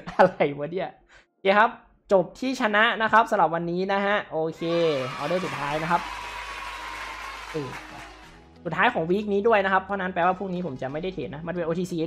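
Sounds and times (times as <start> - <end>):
man speaking: 0.0 - 6.0.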